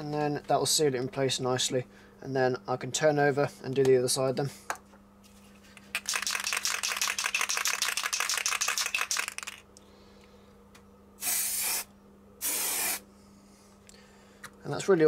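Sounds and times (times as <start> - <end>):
aerosol can ball rattling: 5.9 - 9.7
spray can hissing: 6.0 - 9.6, 11.2 - 13.0.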